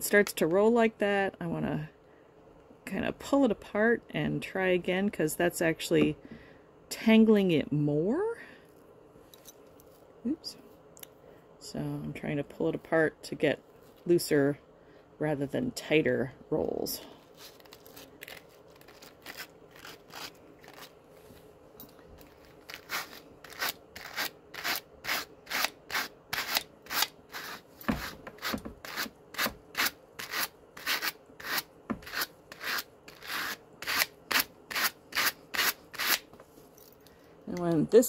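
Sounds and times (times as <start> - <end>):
hand carders brushing fur: 22.2 - 36.2.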